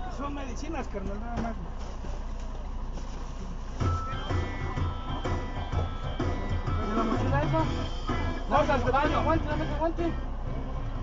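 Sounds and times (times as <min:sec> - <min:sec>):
music with pulsing bass beat: 0:03.8 - 0:11.0.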